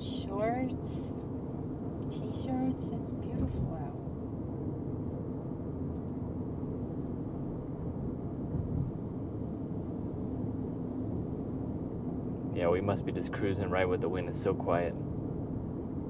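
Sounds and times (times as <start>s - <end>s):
road and tyre noise in cabin: 0.0s - 16.0s.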